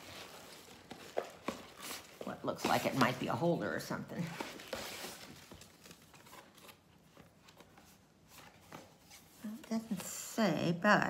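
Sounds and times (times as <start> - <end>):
packaging handling: 0.0 - 3.4, 4.2 - 9.4.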